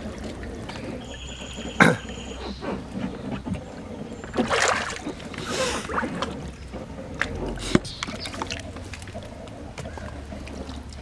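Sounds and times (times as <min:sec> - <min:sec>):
hot tub water sloshing: 0:00.0 - 0:11.0
water swishing: 0:00.0 - 0:11.0.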